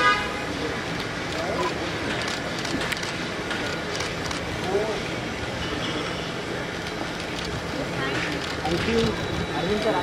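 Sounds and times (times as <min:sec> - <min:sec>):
murmur of outdoor voices: 0:00.0 - 0:10.0.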